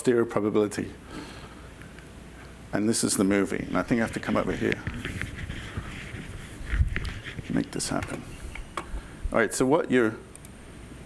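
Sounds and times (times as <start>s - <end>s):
faint shuffling and handling noise: 1.7s - 10.0s
click: 10.3s - 10.6s.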